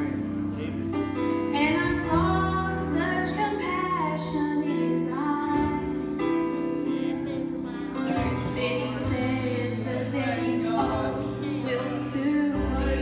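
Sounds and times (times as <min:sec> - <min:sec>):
woman singing into microphone: 0:00.0 - 0:00.6, 0:01.3 - 0:13.0
instrumental accompaniment: 0:00.0 - 0:13.0.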